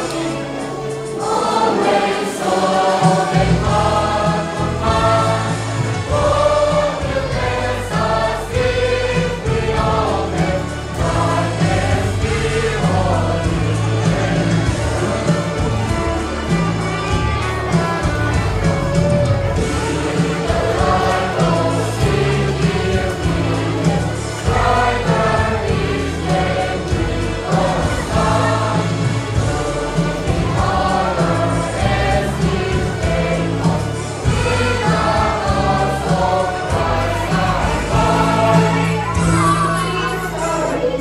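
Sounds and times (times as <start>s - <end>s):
children's choir singing: 0.0s - 41.0s
instrumental accompaniment with bass: 0.0s - 41.0s.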